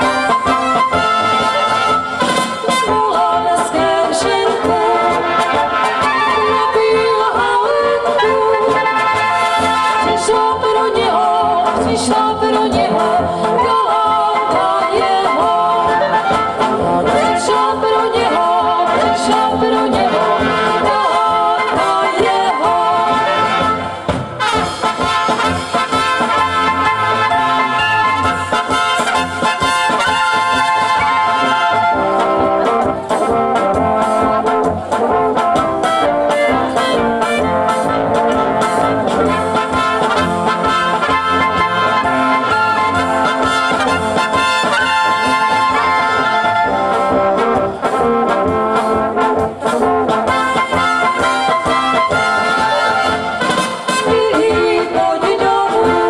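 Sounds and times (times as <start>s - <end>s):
brass band playing dance tune: 0.0s - 56.0s.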